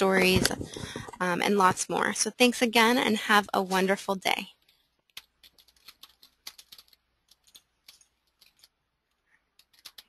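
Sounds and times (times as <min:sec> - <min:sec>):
computer keyboard typing clicks: 0:05.1 - 0:08.7, 0:09.6 - 0:10.0.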